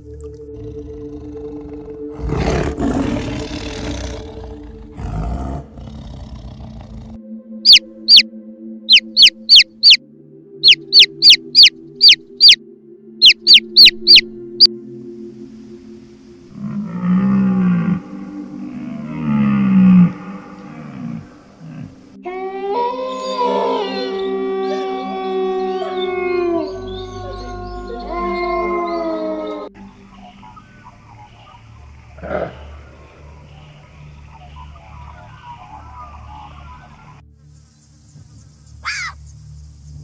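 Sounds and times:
chick peeping: 7.7s - 8.2s, 8.9s - 10.0s, 10.6s - 12.6s, 13.2s - 14.2s.

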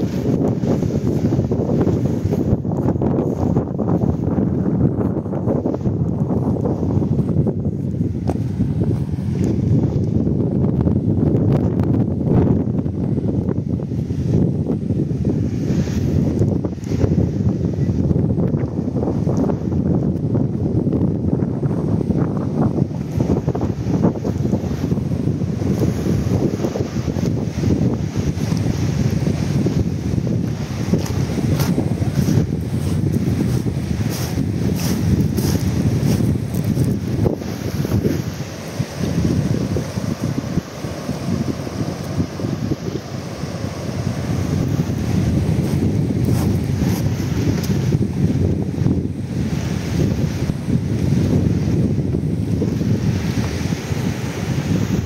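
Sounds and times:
surf breaking on rocks: 0.0s - 17.7s, 21.8s - 55.0s
wind blowing across microphone: 0.0s - 55.0s.

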